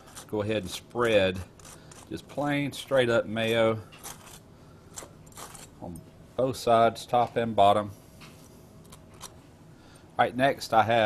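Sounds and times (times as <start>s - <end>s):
knife scraping on bun: 0.0s - 2.5s, 3.9s - 4.4s, 5.0s - 5.8s.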